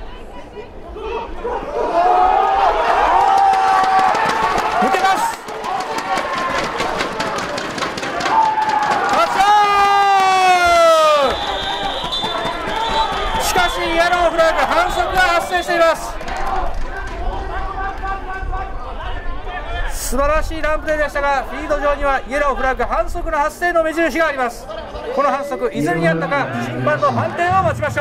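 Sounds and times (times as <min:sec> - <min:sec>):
people chattering and calling out: 0:00.0 - 0:02.1, 0:10.5 - 0:28.0
crowd shouting: 0:00.0 - 0:20.0.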